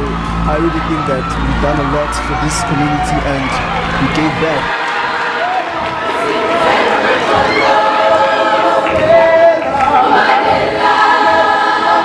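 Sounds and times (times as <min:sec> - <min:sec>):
choir singing long notes: 0:00.0 - 0:12.0.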